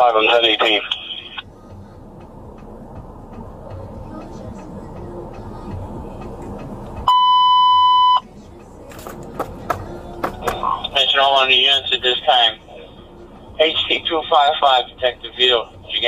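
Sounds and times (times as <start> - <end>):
low rumble and hiss: 0.0 - 16.0
high radio alert beep: 7.1 - 8.2.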